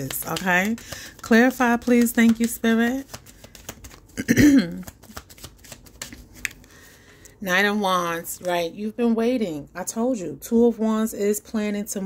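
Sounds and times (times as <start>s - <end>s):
cards being shuffled: 0.0s - 6.8s.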